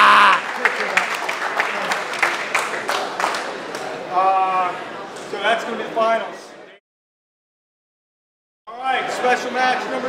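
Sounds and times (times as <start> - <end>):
scattered applause: 0.0 - 4.0.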